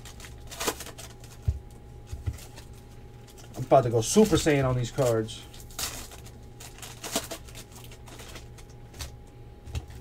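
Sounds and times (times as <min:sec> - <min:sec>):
foil pack ripping open: 0:00.0 - 0:01.6, 0:02.2 - 0:09.1.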